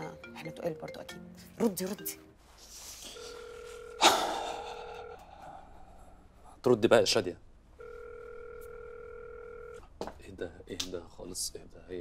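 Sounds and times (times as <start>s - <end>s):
telephone ringback tone: 3.1s - 4.1s, 7.8s - 9.8s.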